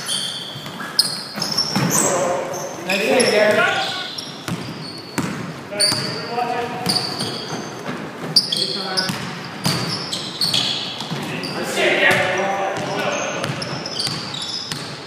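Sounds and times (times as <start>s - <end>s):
sneakers squeaking: 0.0s - 15.0s
players calling out: 1.0s - 14.6s
loud shout: 3.2s - 4.1s
basketball dribbling: 3.2s - 11.3s, 12.1s - 15.0s.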